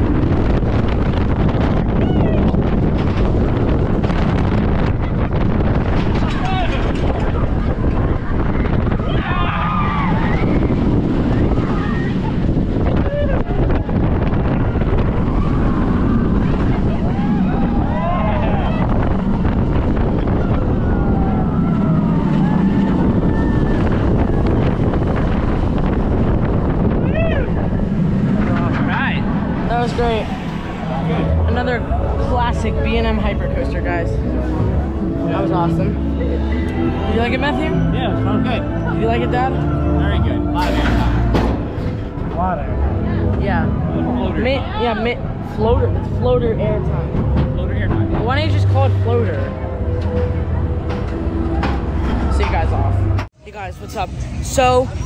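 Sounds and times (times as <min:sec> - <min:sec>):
wind noise on microphone: 0:00.0 - 0:55.0
riders screaming and shouting: 0:01.8 - 0:02.8, 0:06.1 - 0:25.9, 0:26.6 - 0:29.5.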